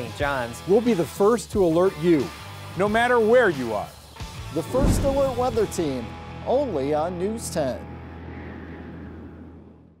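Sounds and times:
low rumble of background music: 4.4 - 8.3.

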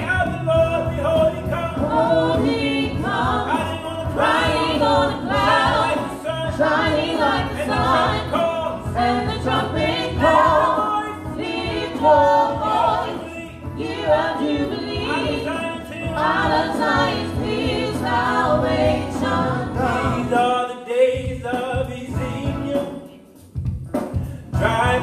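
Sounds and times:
group singing gospel: 0.0 - 22.7.

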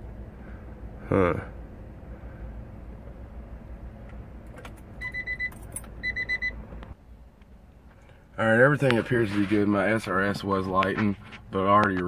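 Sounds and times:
phone ringing with high beeps: 5.0 - 6.6.

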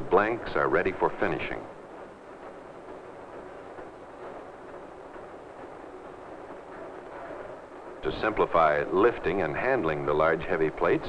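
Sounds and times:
film soundtrack hiss and rumble: 0.0 - 11.0.

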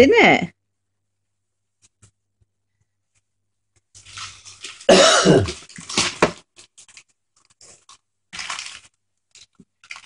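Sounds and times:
gift-wrap paper rustling: 3.2 - 10.0.

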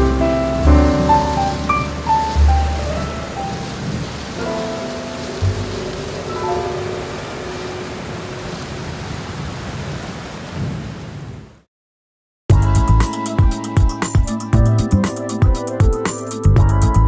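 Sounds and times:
rain hiss: 0.0 - 11.5
thunder rumble: 0.0 - 11.5.

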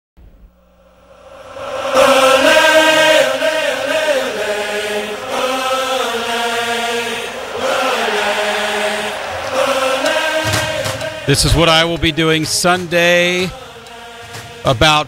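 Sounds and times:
voices chanting long held notes: 0.7 - 14.8.

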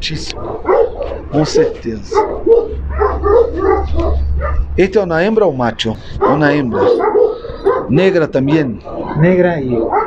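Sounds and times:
low rumble: 0.0 - 7.9
dog barking: 0.2 - 4.8, 6.2 - 10.0.

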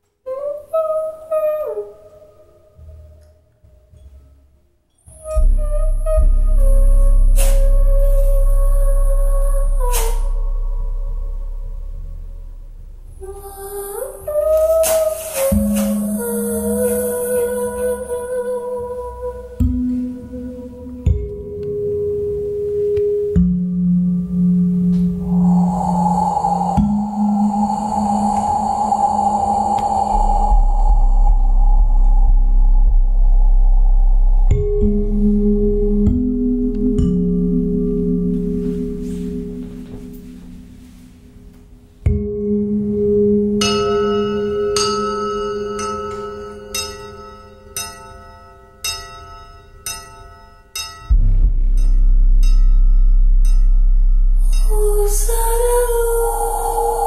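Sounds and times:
ambient music with ringing tones: 0.2 - 57.0
soft hissing shimmer: 25.2 - 33.3
bell-like struck notes: 30.2 - 57.0.

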